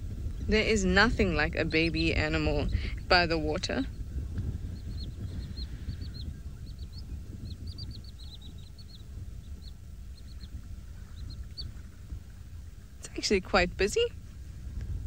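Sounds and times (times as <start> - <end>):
steady low rumble: 0.0 - 15.0
small birds chirping: 0.2 - 14.0.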